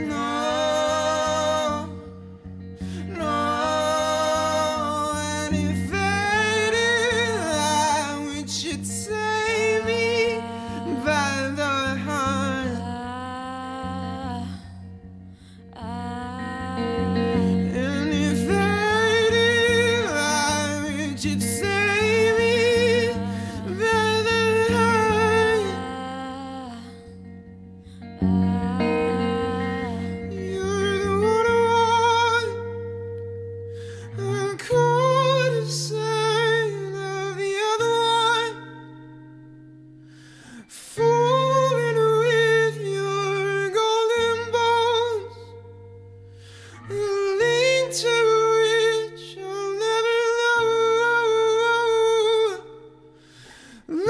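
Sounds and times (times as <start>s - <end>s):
high voice singing wordlessly: 0.0s - 15.0s, 15.7s - 27.2s, 28.2s - 32.9s
lower harmony voice: 0.0s - 39.6s, 40.4s - 54.0s
soft guitar accompaniment: 0.0s - 54.0s
man singing falsetto: 3.0s - 12.8s
intake of breath: 33.7s - 34.2s, 40.0s - 40.7s, 46.2s - 46.9s, 53.2s - 53.9s.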